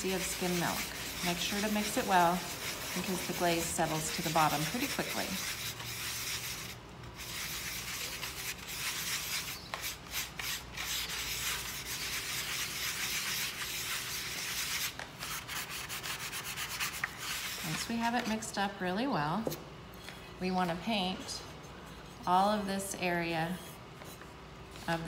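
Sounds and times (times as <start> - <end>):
paintbrush rubbing against bowl: 0.0 - 14.9.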